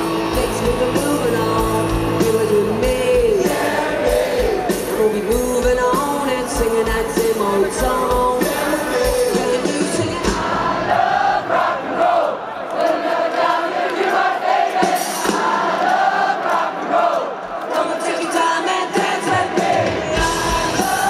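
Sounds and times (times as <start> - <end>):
electric guitar: 0.0 - 10.7, 19.3 - 21.0
rock band with bass and drums: 0.0 - 11.4, 14.7 - 15.9, 18.7 - 21.0
crowd singing along: 0.0 - 21.0.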